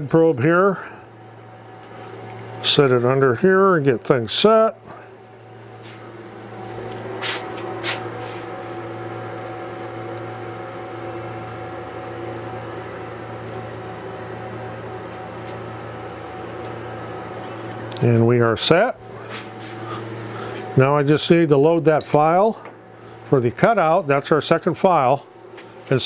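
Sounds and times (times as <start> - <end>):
low hum: 0.0 - 26.0.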